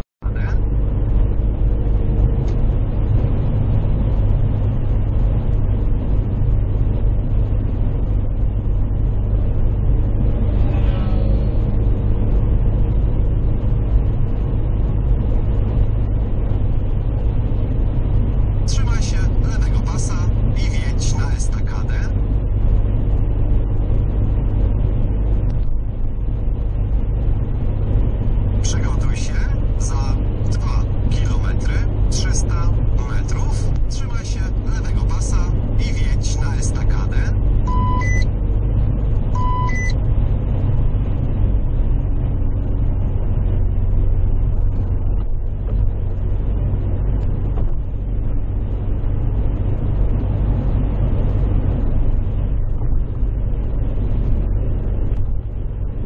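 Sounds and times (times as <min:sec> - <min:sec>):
car engine and tyres droning: 0:00.2 - 0:56.0
short beeps: 0:37.7 - 0:38.3, 0:39.4 - 0:40.0.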